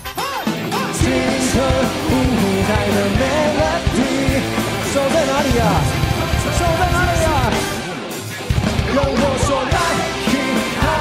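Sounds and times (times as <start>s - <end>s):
rock band playing: 0.0s - 11.0s
person singing: 0.2s - 7.6s, 8.9s - 11.0s.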